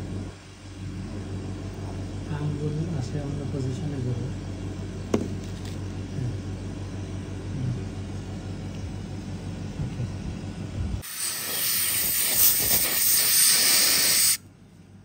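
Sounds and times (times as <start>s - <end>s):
low steady hum: 0.0s - 11.1s
air syringe hissing: 11.0s - 14.4s.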